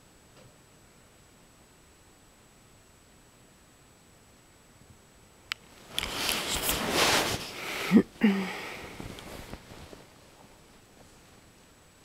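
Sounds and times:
loud breath close to microphone: 0:06.2 - 0:09.2.

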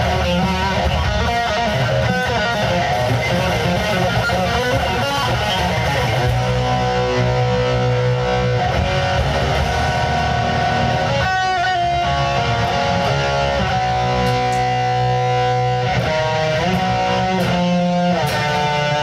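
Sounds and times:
electric guitar playing metal: 0:00.0 - 0:19.0.

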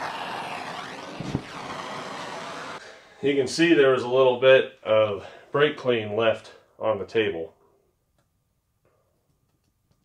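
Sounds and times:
gas torch burning: 0:00.0 - 0:03.4
low whump of fire igniting: 0:00.0 - 0:03.4.

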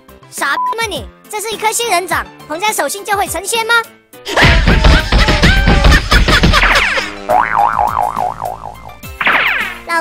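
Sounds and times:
cartoon comedy sound effects: 0:04.4 - 0:09.9.

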